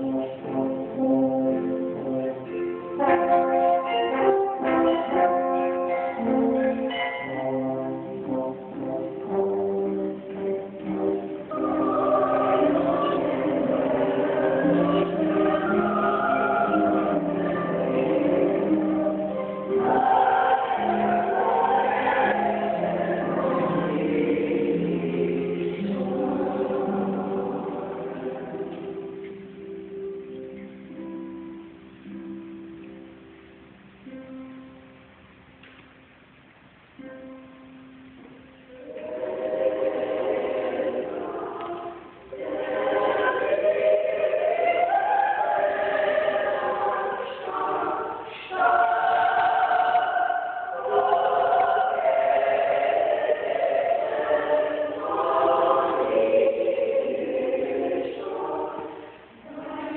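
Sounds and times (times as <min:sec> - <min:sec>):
church choir singing: 0:00.0 - 0:29.5, 0:38.7 - 0:59.9.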